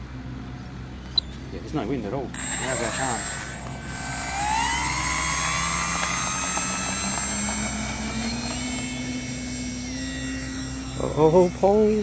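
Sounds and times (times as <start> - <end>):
model plane motor whine: 2.3 - 12.0.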